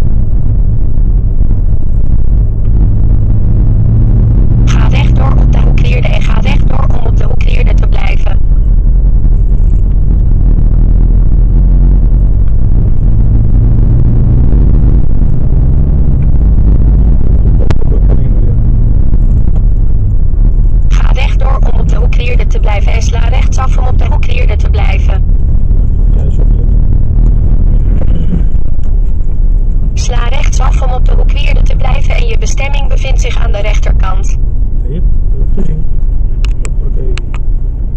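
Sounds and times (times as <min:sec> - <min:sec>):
car engine and tyres rumbling: 0:00.0 - 0:05.7, 0:08.4 - 0:21.0, 0:25.2 - 0:30.0, 0:34.4 - 0:37.9
person speaking: 0:04.7 - 0:08.4, 0:17.6 - 0:18.6, 0:20.9 - 0:25.2, 0:30.0 - 0:35.9
person talking: 0:04.7 - 0:08.4, 0:17.6 - 0:18.6, 0:20.9 - 0:25.2, 0:30.0 - 0:35.9.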